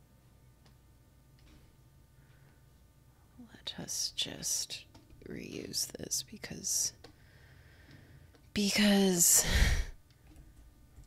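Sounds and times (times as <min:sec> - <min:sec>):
woman whispering and mumbling: 0:08.6 - 0:10.0.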